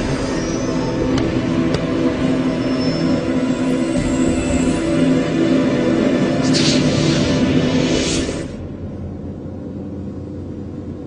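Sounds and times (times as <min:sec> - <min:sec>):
dark droning music: 0:00.0 - 0:11.0.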